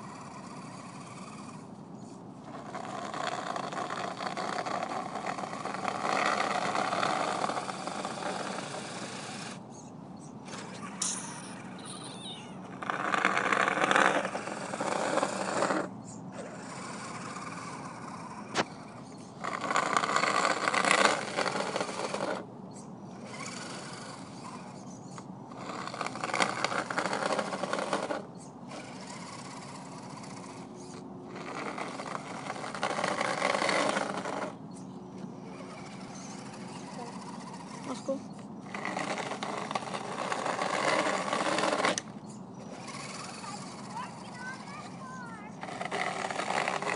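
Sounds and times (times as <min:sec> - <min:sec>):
low motor hum: 0:00.0 - 0:46.9
toy truck motor whining: 0:00.0 - 0:46.9.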